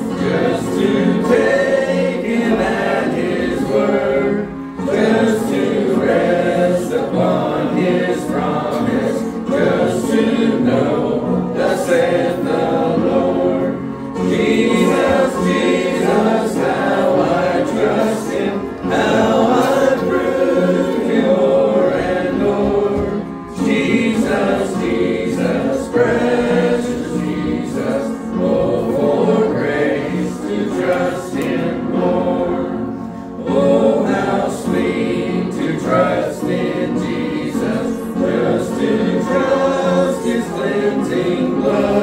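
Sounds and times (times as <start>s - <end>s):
congregation singing a hymn: 0.0s - 42.0s.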